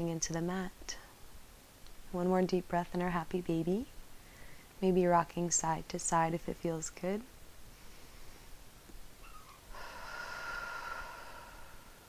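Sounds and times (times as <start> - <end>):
woman breathing deeply: 4.2 - 4.7, 9.7 - 12.0.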